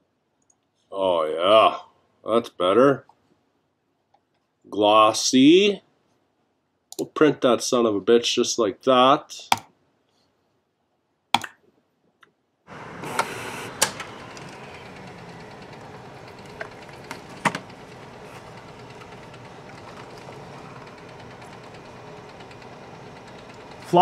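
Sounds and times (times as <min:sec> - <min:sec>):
inkjet printer printing: 0:12.7 - 0:24.0
short printer clicks: 0:12.7 - 0:24.0.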